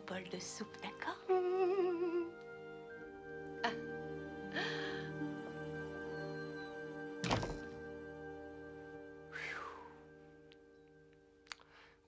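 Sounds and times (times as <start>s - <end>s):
soft background music: 0.0s - 12.0s
wooden door shutting: 7.2s - 7.8s.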